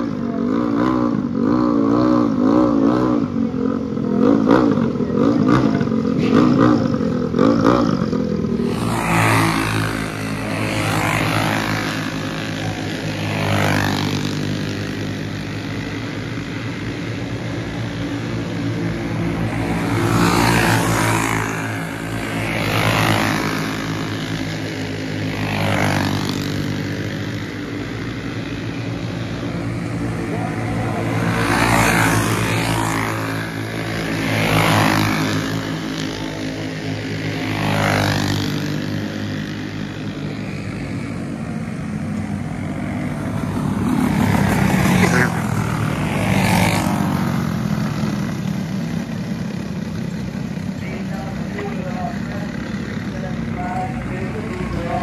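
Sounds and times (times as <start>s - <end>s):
go-kart engines buzzing: 0.0s - 55.0s.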